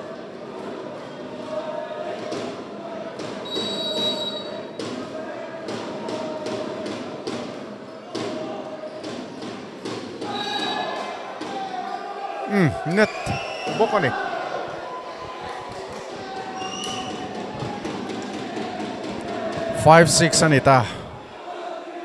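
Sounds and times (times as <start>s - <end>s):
crowd voices din: 10.8s - 22.0s.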